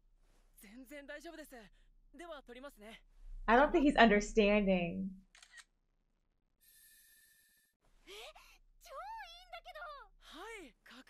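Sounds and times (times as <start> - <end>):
camera shutter: 5.3 - 5.7.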